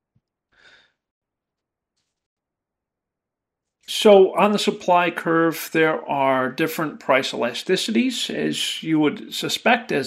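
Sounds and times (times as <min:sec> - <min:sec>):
short breath: 0:00.5 - 0:01.0.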